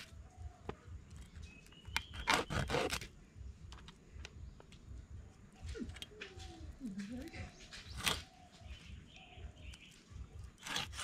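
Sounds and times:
blade clicking on wood: 1.9s - 3.1s, 10.6s - 11.0s
knife scraping fish: 10.6s - 11.0s.

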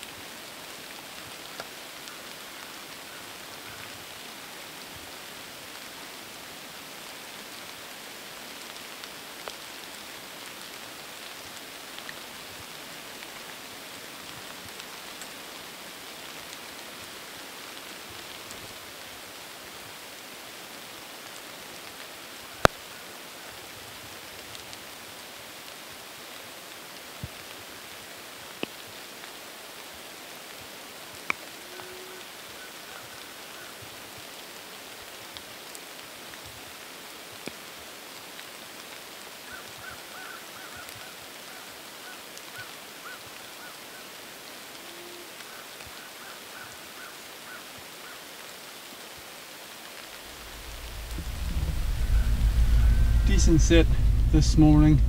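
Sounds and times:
light rain in woods: 0.0s - 55.0s.

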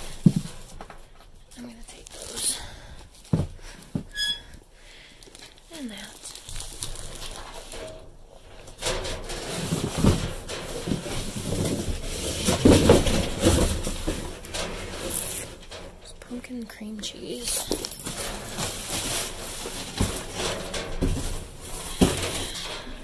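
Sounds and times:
rustling and crinkling bags: 0.0s - 23.0s.

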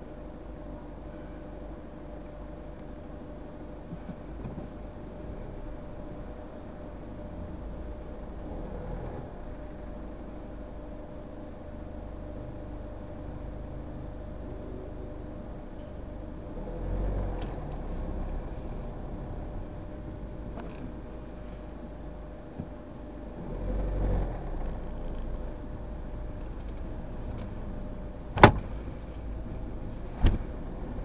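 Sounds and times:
car engine and road rumble: 0.0s - 31.0s.

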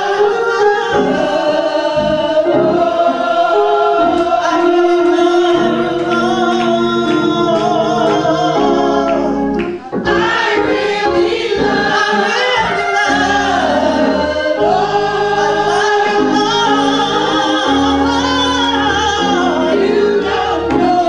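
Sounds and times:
choir singing gospel song: 0.0s - 21.0s.

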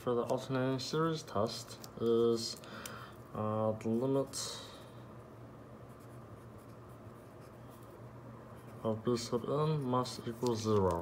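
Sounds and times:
pencil scratching on paper: 5.9s - 7.9s.

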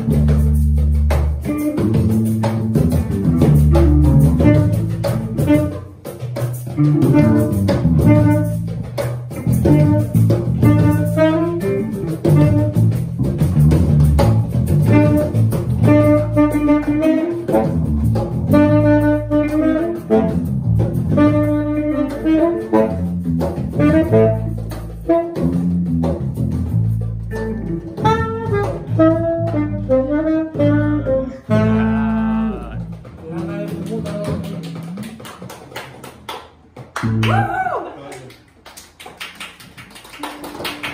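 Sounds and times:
saxophone melody: 1.4s - 13.2s, 14.8s - 26.0s, 27.3s - 33.8s
steady beat: 30.6s - 34.9s.

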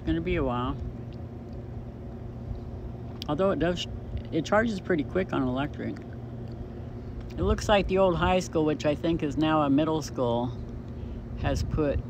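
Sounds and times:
constant low hum: 0.0s - 12.0s
steady low rumble: 0.0s - 12.0s.

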